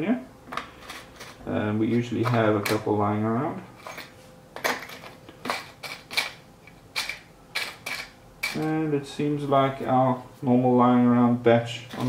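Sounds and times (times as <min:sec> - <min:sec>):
small parts clattering in container: 0:03.8 - 0:06.4.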